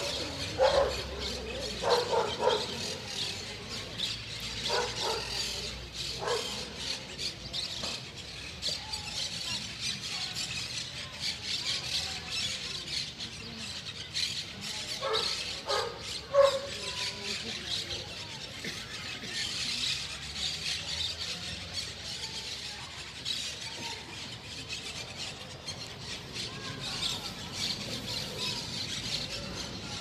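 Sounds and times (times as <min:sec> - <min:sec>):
small birds chirping: 0:00.0 - 0:30.0.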